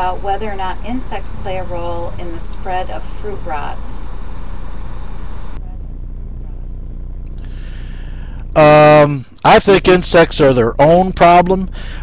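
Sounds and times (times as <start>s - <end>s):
low hum with hiss: 0.0s - 12.0s.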